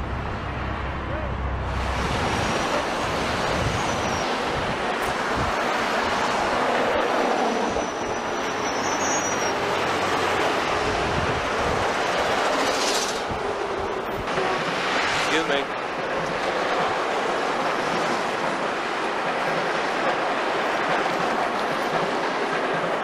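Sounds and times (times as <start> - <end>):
train running on rails: 0.0 - 23.0
wheel squeals: 3.5 - 4.5, 7.4 - 10.2.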